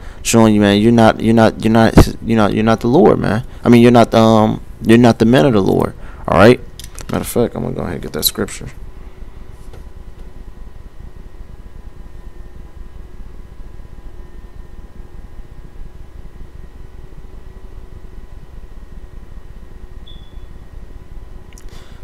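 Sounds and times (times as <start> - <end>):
room hum and hiss: 0.0 - 22.0
short faint high beep: 20.0 - 20.5.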